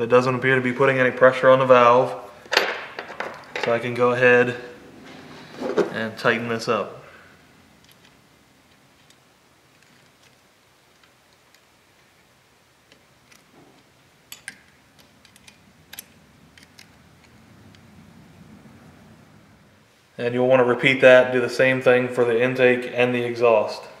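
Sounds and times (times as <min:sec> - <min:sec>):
rustle of handling: 0:07.0 - 0:18.0.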